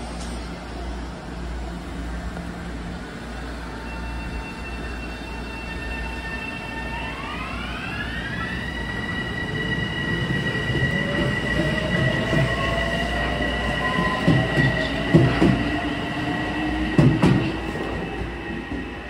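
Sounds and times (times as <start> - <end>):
electric train whine: 0.0 - 19.0.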